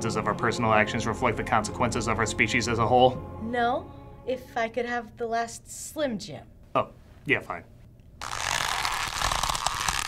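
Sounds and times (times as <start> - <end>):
crackling hiss: 8.2 - 10.0.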